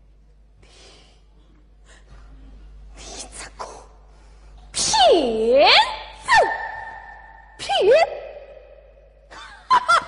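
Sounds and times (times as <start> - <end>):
opera vocal cry swooping in pitch: 4.9 - 8.5.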